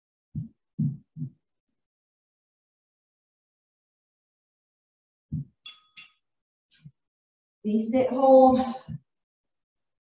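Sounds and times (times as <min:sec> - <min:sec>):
low dull thumps: 0:00.4 - 0:01.4.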